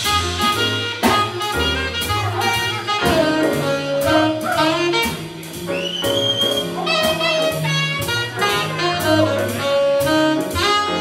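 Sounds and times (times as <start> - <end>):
light drum strikes: 0.0 - 10.9
piano: 0.0 - 11.0
trombone: 0.0 - 11.0
trumpet: 0.0 - 11.0
upright bass: 0.0 - 11.0.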